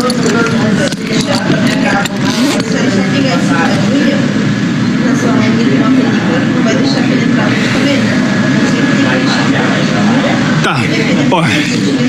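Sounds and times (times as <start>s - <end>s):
steady background noise: 0.0s - 12.0s
man speaking indistinctly: 10.6s - 12.0s.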